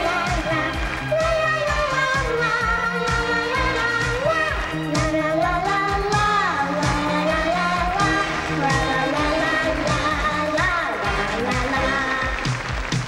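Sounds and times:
girl singing pop song: 0.0 - 12.6
band accompaniment with drum beat: 0.0 - 13.0.

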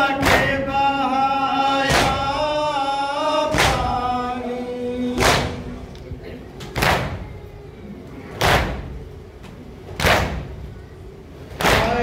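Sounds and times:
group chanting lament: 0.0 - 5.9, 11.6 - 12.0
heavy chest slaps: 10.0 - 10.5.

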